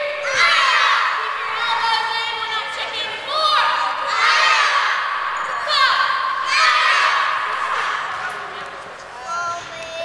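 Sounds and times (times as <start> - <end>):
children shouting: 0.0 - 9.3.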